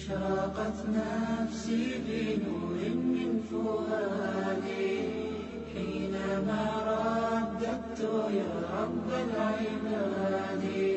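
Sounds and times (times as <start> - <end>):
slow melodic vocal chanting: 0.0 - 10.9.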